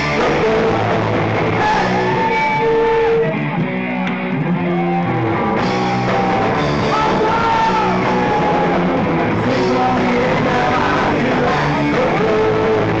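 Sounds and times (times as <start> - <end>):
bass guitar: 0.0 - 13.0
drum kit: 0.0 - 13.0
electric guitar: 0.0 - 13.0.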